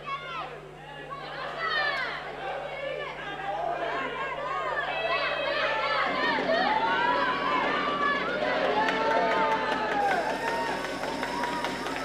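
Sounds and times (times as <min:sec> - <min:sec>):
spectators shouting and yelling: 0:00.0 - 0:12.0.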